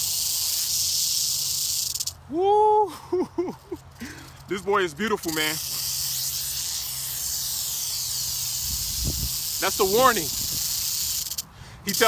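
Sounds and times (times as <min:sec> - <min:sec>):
rattlesnake tail rattling: 0:00.0 - 0:02.2, 0:03.6 - 0:12.0
man exclaiming: 0:02.3 - 0:03.3.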